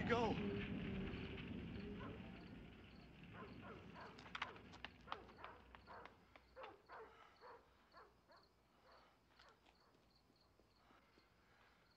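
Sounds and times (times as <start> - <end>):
crickets chirping: 0.2 - 4.1.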